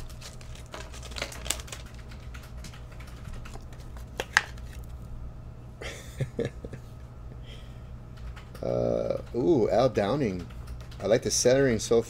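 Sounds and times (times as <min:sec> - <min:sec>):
plastic card sleeve crinkling: 0:00.0 - 0:02.5, 0:03.1 - 0:05.1
steady low hum: 0:00.0 - 0:12.0.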